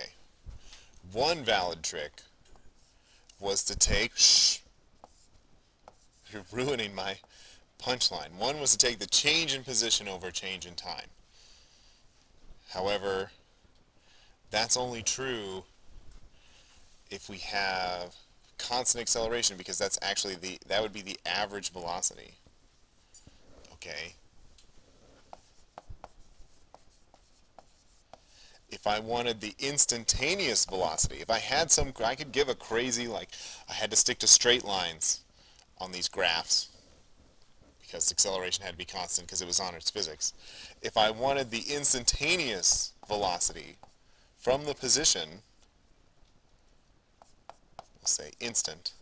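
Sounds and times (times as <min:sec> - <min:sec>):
stylus tapping on tablet screen: 0:47.2 - 0:48.2.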